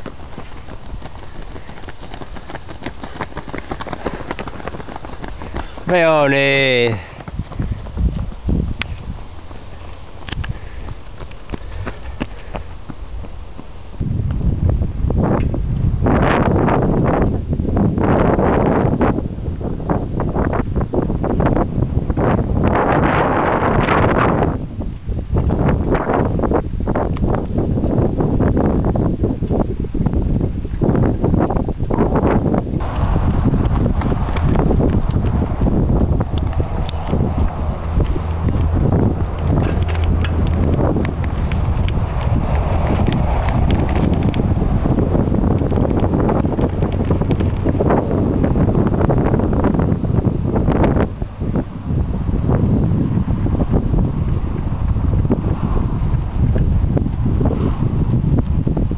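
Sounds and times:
low steady hum: 0:00.0 - 0:58.9
wind buffeting microphone: 0:00.0 - 0:58.9.

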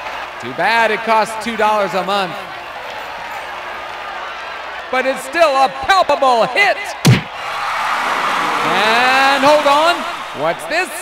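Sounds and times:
crowd roar: 0:06.7 - 0:11.0
heavy punch sound effect: 0:07.0 - 0:07.4.

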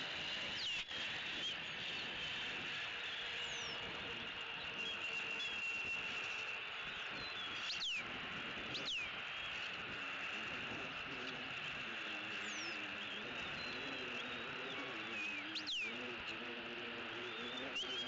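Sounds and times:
high insect-like drone: 0:00.0 - 0:18.0
bird chirps sliding downward: 0:00.4 - 0:08.1, 0:08.7 - 0:16.1.

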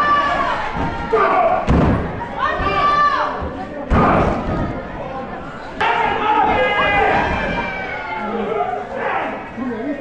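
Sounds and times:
people shouting: 0:00.0 - 0:04.6, 0:05.8 - 0:09.5.

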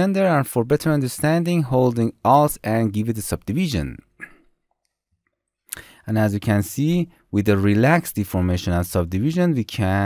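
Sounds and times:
short breath: 0:05.7 - 0:06.1.

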